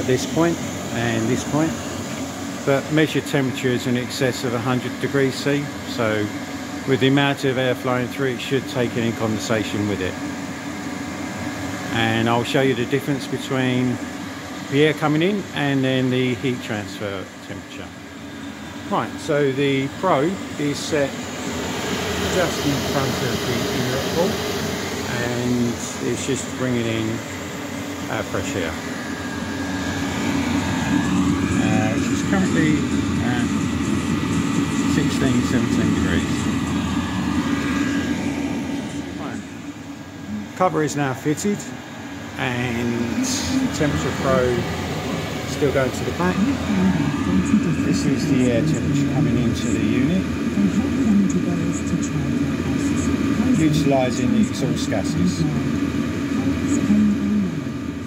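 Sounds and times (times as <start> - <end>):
air heater blower drone: 0.0 - 58.0.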